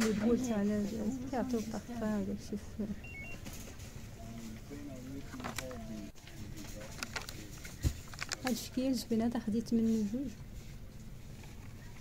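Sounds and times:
high electronic beep: 0:03.0 - 0:03.4.

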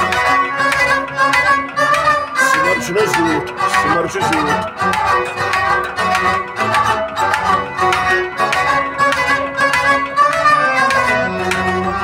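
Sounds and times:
bowed string melody: 0:00.0 - 0:12.0.

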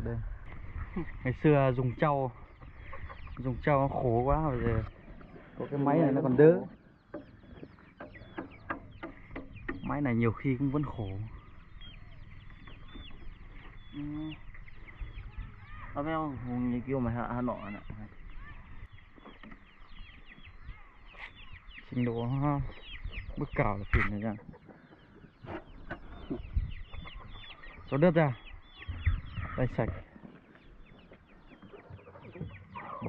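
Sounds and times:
birds chirping: 0:00.0 - 0:33.0
low knocks: 0:08.0 - 0:10.4
low steady rumble: 0:08.9 - 0:16.6.

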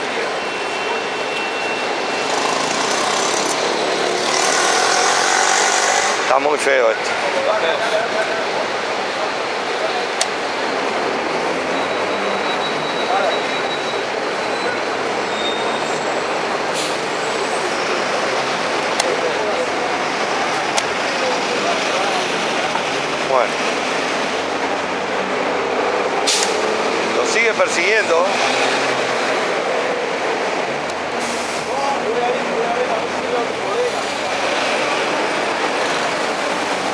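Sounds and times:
city street traffic hum: 0:00.0 - 0:36.9.

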